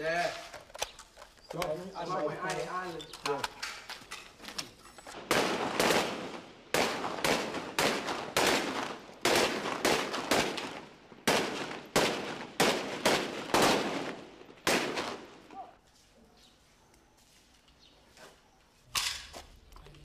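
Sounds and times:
gunshots with echo: 5.2 - 15.4.

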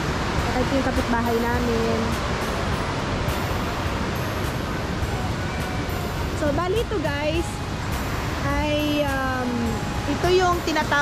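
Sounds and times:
river rapids rushing: 0.0 - 11.0.

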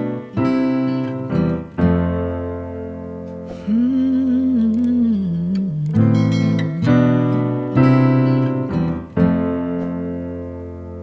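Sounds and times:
electric piano chords: 0.0 - 11.0
man humming: 3.6 - 7.0.

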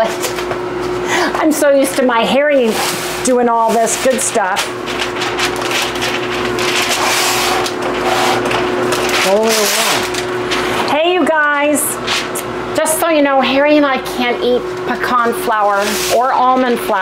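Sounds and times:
person speaking: 1.2 - 4.7, 9.2 - 12.0
parchment paper crinkling: 3.6 - 10.7.

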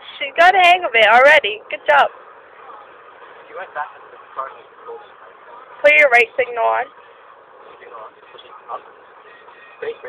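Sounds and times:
car cabin engine and road noise: 0.0 - 10.0.

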